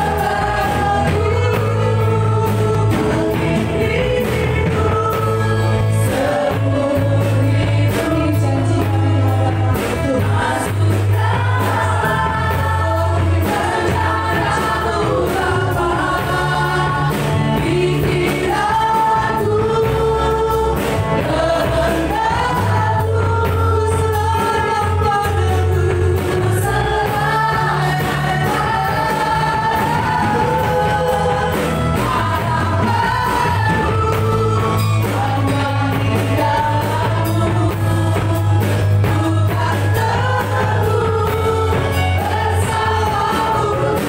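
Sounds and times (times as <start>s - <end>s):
bass line: 0.0s - 44.0s
drums: 0.0s - 44.0s
guitar: 0.0s - 44.0s
keyboard: 0.0s - 44.0s
singers singing praise song: 0.0s - 44.0s.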